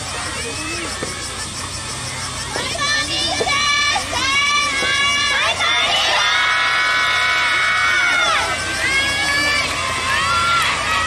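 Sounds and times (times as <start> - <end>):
girls shouting a cheer: 2.4 - 11.0.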